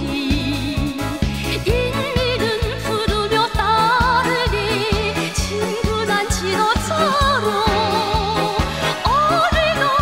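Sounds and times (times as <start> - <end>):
woman singing with vibrato: 0.0 - 10.0.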